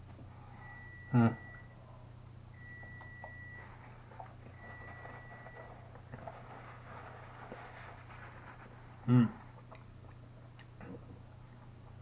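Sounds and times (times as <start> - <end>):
steady low hum: 0.0 - 12.0
man chewing food: 2.6 - 12.0.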